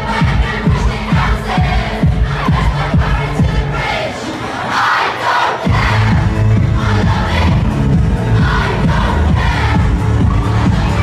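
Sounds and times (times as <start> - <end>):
pounding bass: 0.0 - 3.8, 5.7 - 11.0
loud distorted dance music: 0.0 - 4.1, 4.8 - 11.0
crowd shouting and singing along: 0.0 - 11.0.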